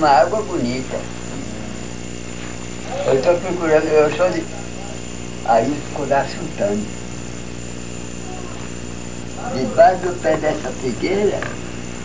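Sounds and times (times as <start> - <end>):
electrical hum with hiss: 0.0 - 12.0
thin high whine: 0.0 - 12.0.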